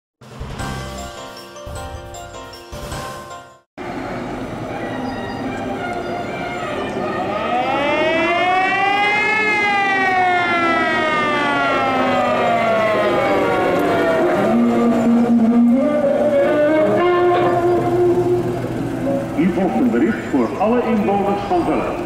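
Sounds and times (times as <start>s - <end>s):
steady background noise: 3.8s - 8.1s
fire engine siren winding: 4.6s - 21.0s.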